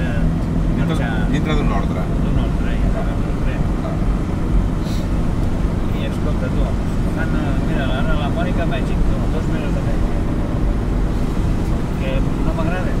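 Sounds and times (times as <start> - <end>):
car engine and tyre rumble: 0.0 - 13.0.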